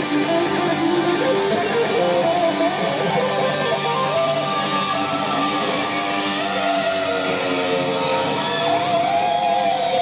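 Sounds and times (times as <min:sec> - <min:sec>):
electric guitar with string bends: 0:00.0 - 0:10.0
hard rock band playing: 0:00.0 - 0:10.0.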